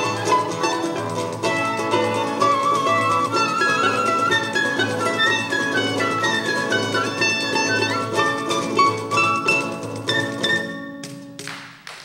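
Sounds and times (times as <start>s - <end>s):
flute melody: 0.0s - 11.0s
acoustic guitar: 0.0s - 11.8s
hand percussion: 0.0s - 11.8s
plucked string instrument: 0.0s - 11.8s.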